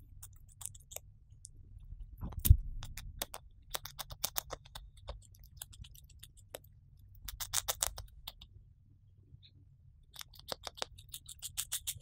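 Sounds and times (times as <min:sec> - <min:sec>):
hamster nibbling crunches: 0:00.0 - 0:08.6, 0:10.0 - 0:12.0.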